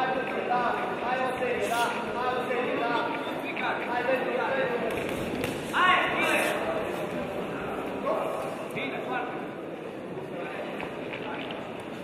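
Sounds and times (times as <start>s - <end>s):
crowd murmur and chatter: 0.0s - 12.0s.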